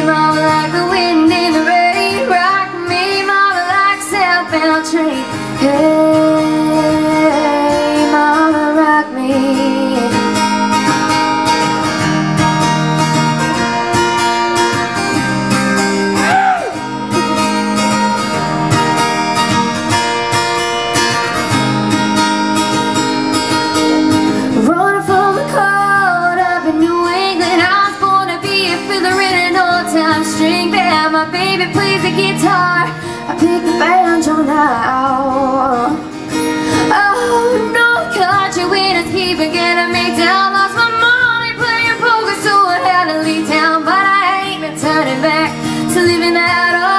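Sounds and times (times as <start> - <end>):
woman singing: 0.0 - 11.2, 24.4 - 46.9
acoustic guitar strumming: 0.0 - 46.9.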